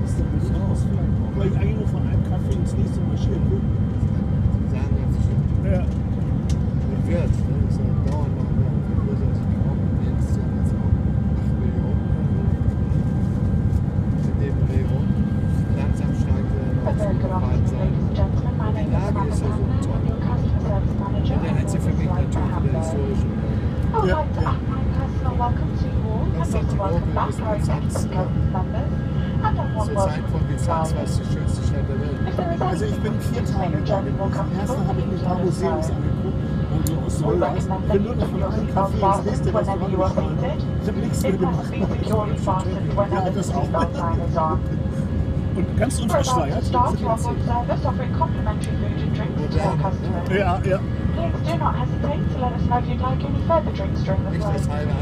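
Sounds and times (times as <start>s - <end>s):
airliner cabin drone: 0.0s - 55.0s
indistinct voices talking: 14.3s - 55.0s.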